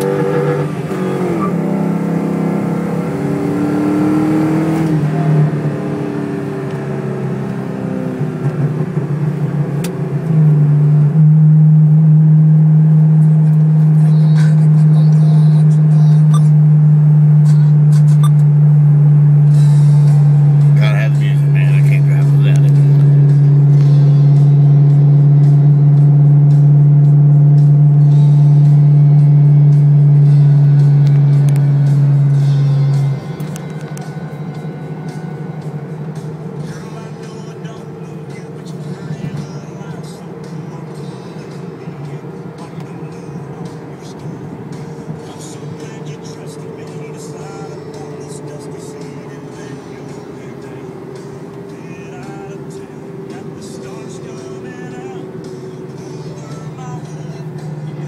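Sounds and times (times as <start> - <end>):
car engine and exhaust drone: 0.0 - 58.0.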